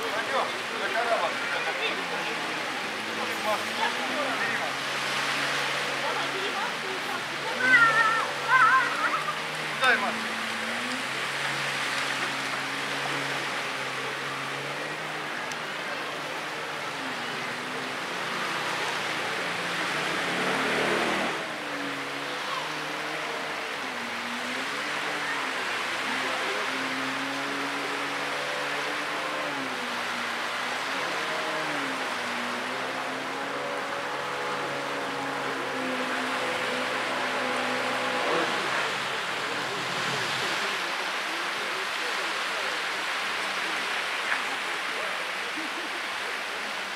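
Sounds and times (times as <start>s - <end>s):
hiss of spray and surf: 0.0s - 46.9s
jet ski engine revving: 0.0s - 46.9s.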